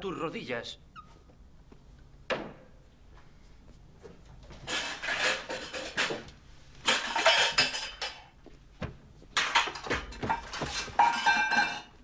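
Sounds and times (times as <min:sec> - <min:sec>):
pots and pans clattering: 0:04.6 - 0:06.2, 0:06.8 - 0:08.3, 0:09.4 - 0:12.0.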